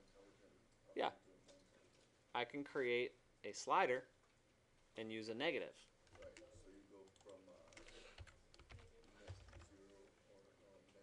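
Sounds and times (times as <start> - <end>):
computer keyboard and mouse clicking: 6.0 - 10.0.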